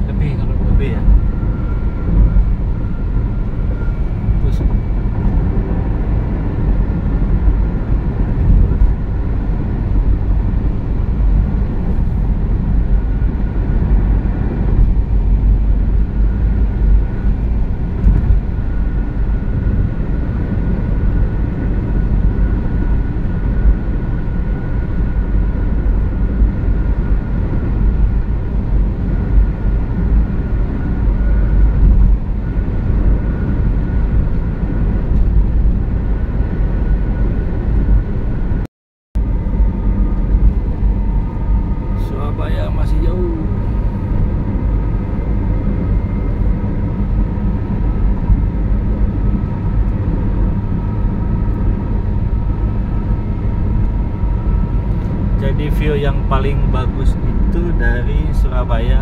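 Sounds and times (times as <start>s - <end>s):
car engine and wind noise: 0.0s - 59.0s
faint steady whine: 0.0s - 59.0s.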